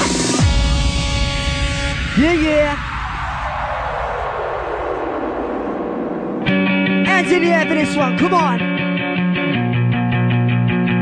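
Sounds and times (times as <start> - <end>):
electronic dance music: 0.0 - 4.0, 6.4 - 8.8
white-noise sweep: 0.0 - 7.8.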